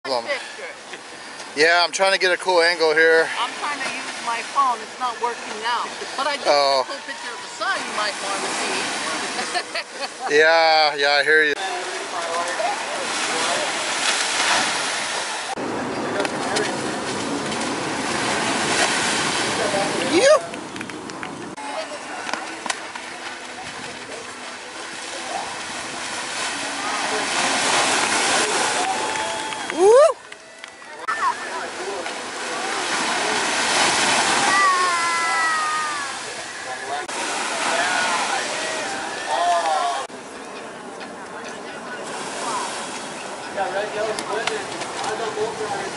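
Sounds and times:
waves breaking on shore: 0.1 - 45.9
faint voices: 19.4 - 45.9
voices shouting: 34.2 - 40.1.

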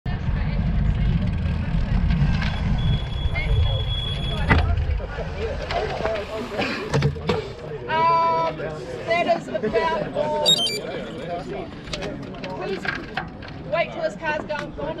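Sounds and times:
murmur of voices chatting: 3.3 - 15.0.

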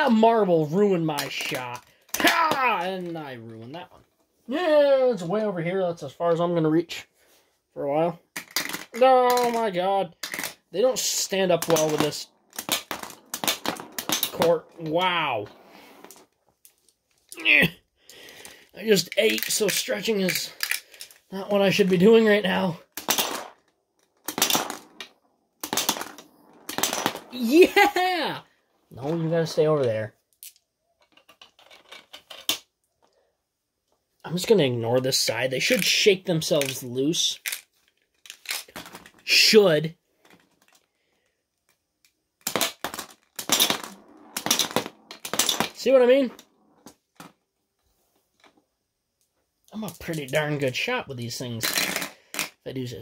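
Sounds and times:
marbles clattering on plastic board: 1.1 - 3.2, 8.3 - 16.3, 18.8 - 28.0, 30.4 - 32.6, 42.4 - 47.4, 51.6 - 52.6
toy shooter firing marbles: 8.4 - 15.0, 19.0 - 21.1, 21.8 - 28.0, 42.4 - 46.5.

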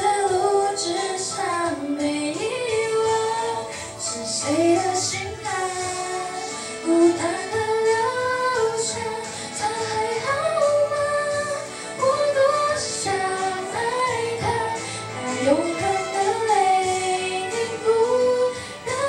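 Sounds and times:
girl singing into microphone: 0.0 - 19.0.

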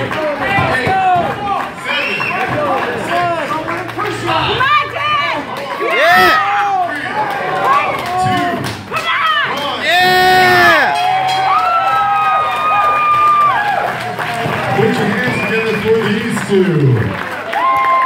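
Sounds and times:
spectators shouting and cheering: 0.0 - 18.0.

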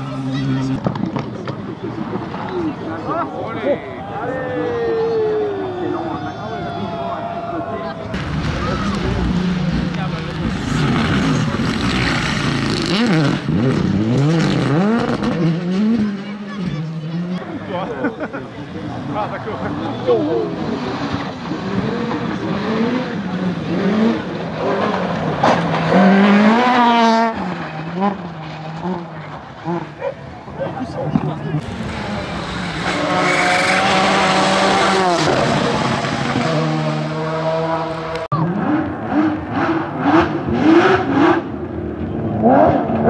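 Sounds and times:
rally car accelerating: 0.0 - 3.5, 8.0 - 43.0
rally car engine revving: 8.1 - 43.0
car engine high-revving run: 8.2 - 17.5, 19.0 - 30.0, 31.1 - 43.0.

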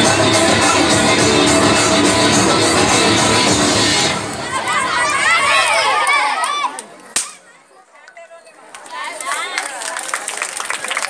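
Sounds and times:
sharp crack: 7.2 - 7.4.

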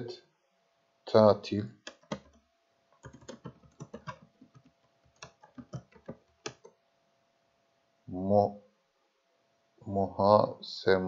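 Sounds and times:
keyboard typing clicks: 1.8 - 2.4, 3.0 - 6.7.

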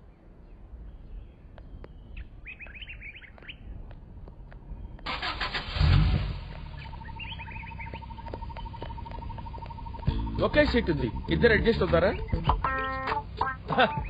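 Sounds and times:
birds chirping: 0.0 - 14.0
jeep loud low rumble: 5.0 - 12.6.

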